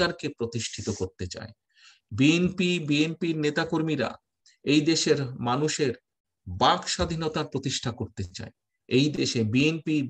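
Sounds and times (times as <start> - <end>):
man giving a speech: 0.0 - 10.0.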